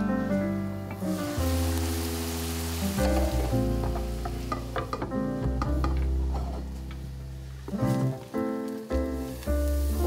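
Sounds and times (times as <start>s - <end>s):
background music: 0.0s - 10.0s
pie sizzling in a frying pan: 1.0s - 5.1s, 5.8s - 10.0s.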